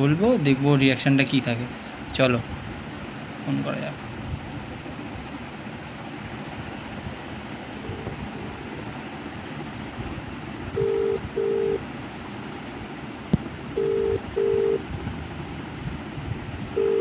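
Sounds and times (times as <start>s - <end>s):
phone ringback tone: 7.8s - 8.8s, 10.8s - 11.8s, 13.8s - 14.8s, 16.8s - 17.0s.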